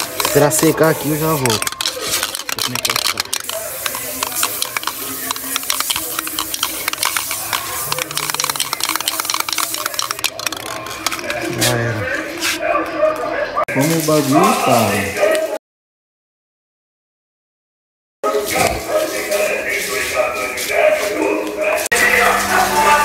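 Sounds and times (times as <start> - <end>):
spray can hissing: 0.0 - 11.8
person speaking: 0.0 - 12.6.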